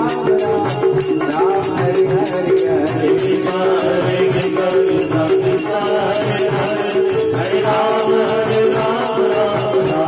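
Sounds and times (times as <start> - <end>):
drum beat: 0.0 - 10.0
small hand cymbals: 0.0 - 10.0.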